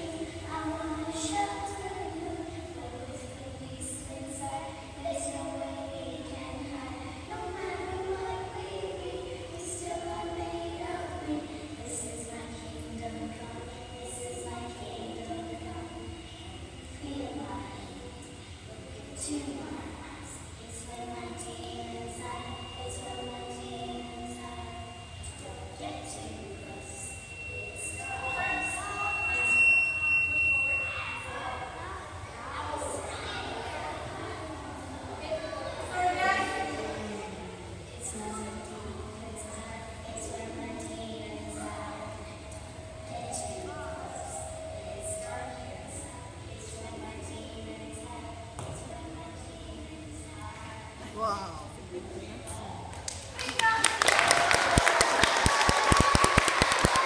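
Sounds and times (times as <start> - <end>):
high steady pure tone: 0.0 - 53.1
faint voices: 0.0 - 57.0
person clapping loudly nearby: 53.1 - 57.0
children applauding: 53.4 - 57.0.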